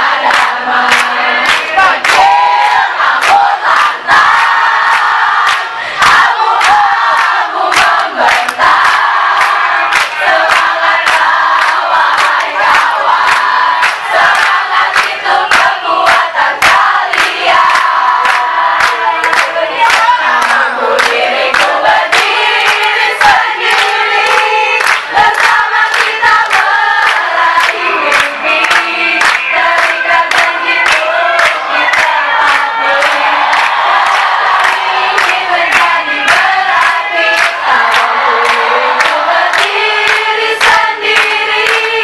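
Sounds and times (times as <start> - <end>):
crowd clapping in time: 0.0 - 42.0
crowd singing and shouting a chant: 0.0 - 42.0.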